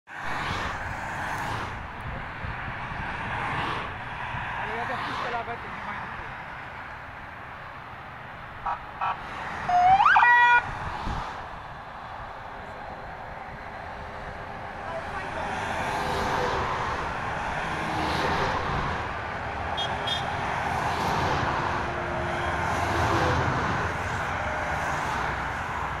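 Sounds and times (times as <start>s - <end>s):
trucks passing on road: 0.1s - 26.0s
siren whoop rising in pitch: 9.7s - 10.7s.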